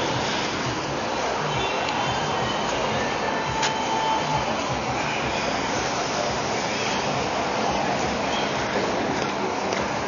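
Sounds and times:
traffic rushing: 0:00.0 - 0:10.0.

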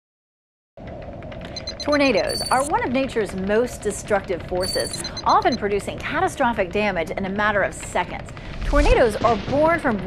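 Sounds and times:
short high beeps: 0:01.5 - 0:02.7, 0:04.6 - 0:05.3
steady electronic hum: 0:01.5 - 0:02.8, 0:04.6 - 0:05.6
person speaking: 0:01.7 - 0:02.8.

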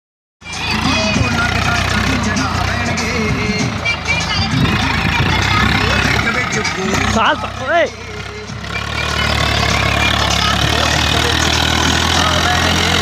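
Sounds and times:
music: 0:00.4 - 0:13.0
tractor diesel engine under load: 0:00.4 - 0:13.0
voices: 0:00.4 - 0:13.0.

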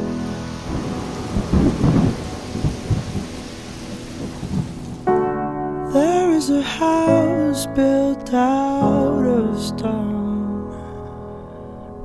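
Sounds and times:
thunder rumbling: 0:00.0 - 0:08.0
rain falling: 0:00.0 - 0:09.7.

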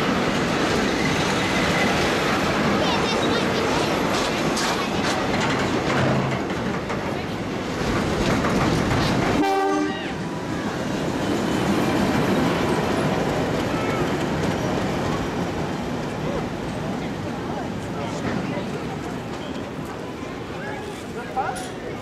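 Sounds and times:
train carriages rolling on track: 0:00.0 - 0:22.0.

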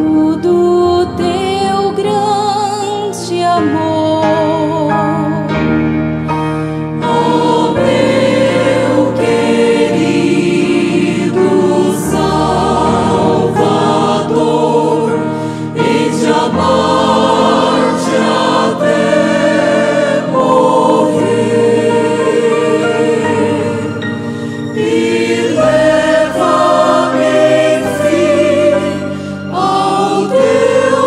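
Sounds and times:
mixed choir singing hymn: 0:07.0 - 0:31.0.

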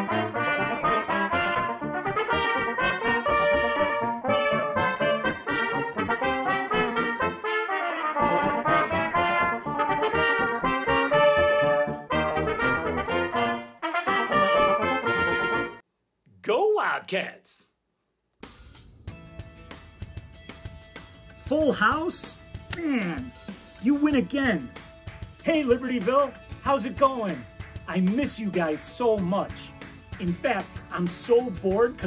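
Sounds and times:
trumpets playing in harmony: 0:00.0 - 0:15.8.

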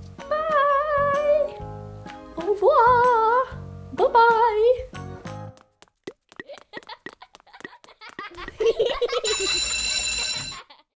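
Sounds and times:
bright bell-like chime: 0:09.1 - 0:10.6.

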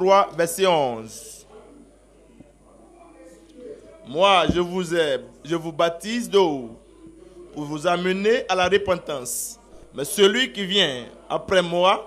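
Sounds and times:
faint background voice: 0:01.1 - 0:04.8, 0:06.6 - 0:07.8.

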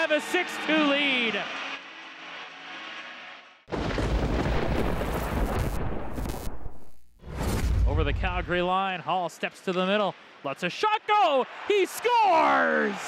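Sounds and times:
deep booming transition effect: 0:03.6 - 0:08.6.

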